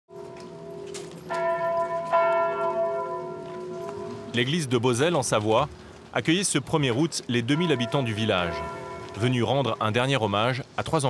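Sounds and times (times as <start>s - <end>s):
church bell ringing: 0.1s - 4.9s, 7.4s - 10.2s.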